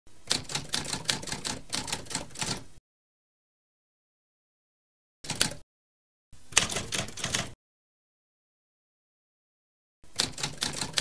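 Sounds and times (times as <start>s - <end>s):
typewriter key clacks: 5.3s - 5.6s.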